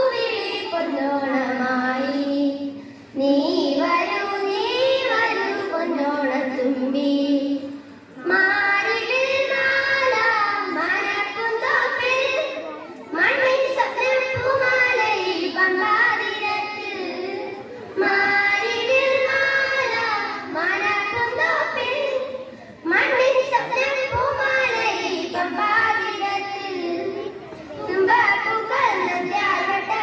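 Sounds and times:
children singing together: 3.2 - 30.0.

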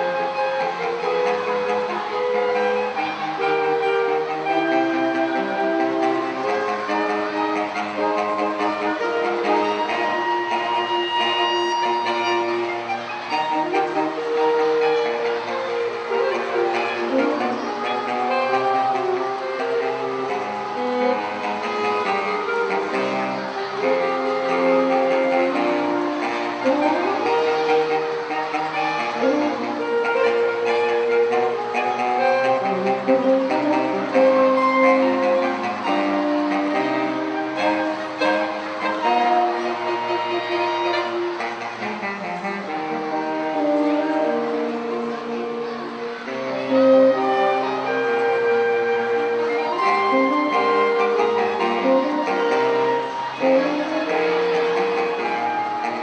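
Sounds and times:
saxophone quartet playing chords: 0.0 - 56.0.

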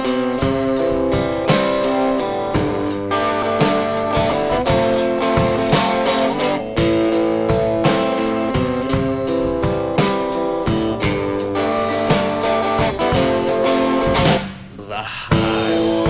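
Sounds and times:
electric guitar strumming chords: 0.0 - 16.0.

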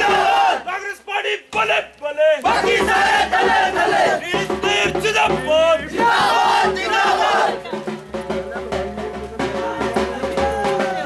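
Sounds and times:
crowd of men shouting slogans: 0.0 - 1.8, 2.4 - 7.7.

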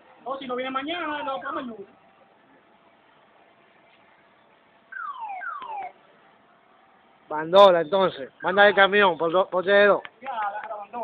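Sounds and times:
car alarm chirps: 4.9 - 6.0, 7.8 - 9.4.

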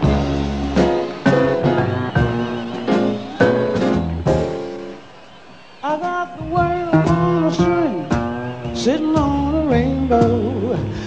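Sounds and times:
plucked upright bass: 8.7 - 10.9
woman singing jazz: 8.8 - 11.0.

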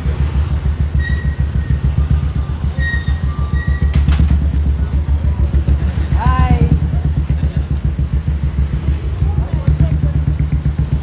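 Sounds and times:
vehicle engine throbbing: 0.0 - 11.0.

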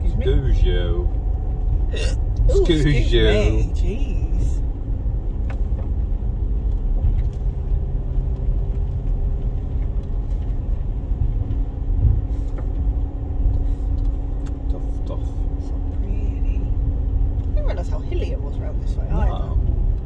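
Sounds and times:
car engine and road rumble: 0.0 - 20.0
constant hum: 0.0 - 20.0.

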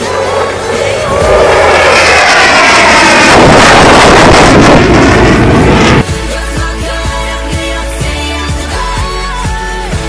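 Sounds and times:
airplane flying low overhead: 0.0 - 6.1.

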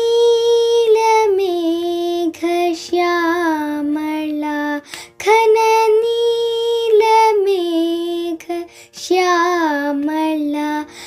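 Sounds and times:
girl singing unaccompanied: 0.0 - 11.0.

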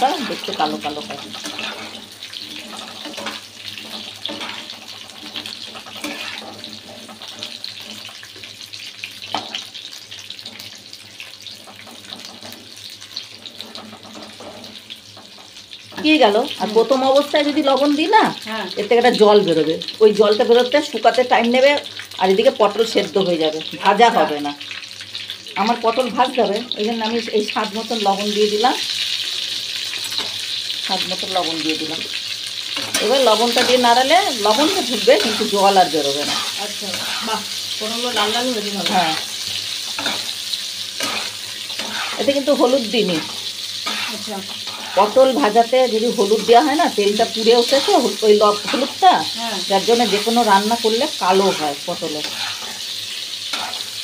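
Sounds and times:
spatula stirring in a pan: 0.0 - 16.6, 28.8 - 31.3, 32.0 - 54.0
vegetables sizzling in oil: 0.0 - 54.0.

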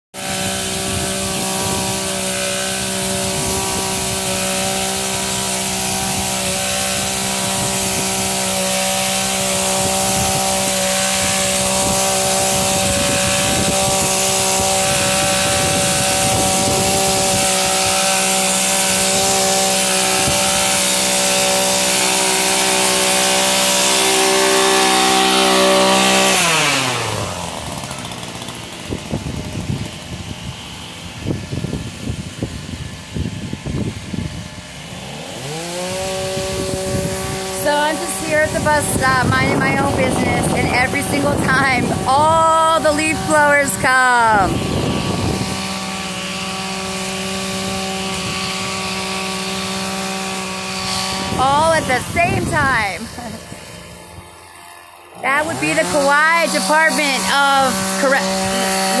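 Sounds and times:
string trimmer engine running: 0.2 - 59.0.

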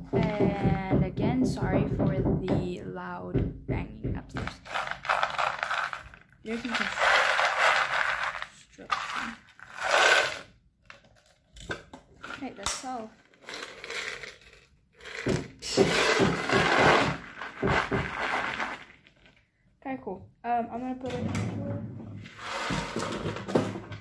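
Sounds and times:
glass crystals rattling in wooden box: 4.6 - 10.4, 13.3 - 15.4.

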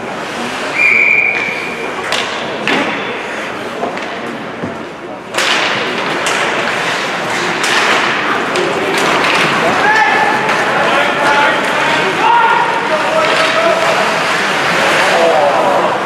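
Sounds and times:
hockey sticks clacking: 0.0 - 16.0
stick and puck knocks: 2.0 - 3.1, 3.8 - 10.6.

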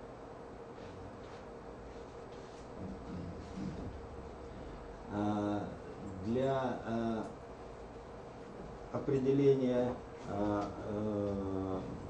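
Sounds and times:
man's drawn-out hesitation: 2.8 - 7.4.

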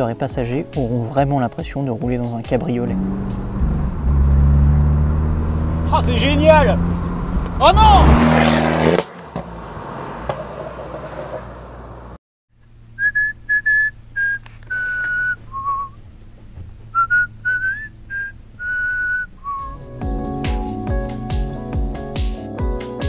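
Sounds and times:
outdoor noise: 3.0 - 20.0
whistled melody: 13.0 - 16.0, 16.9 - 21.5
music track with a beat: 19.7 - 23.0.

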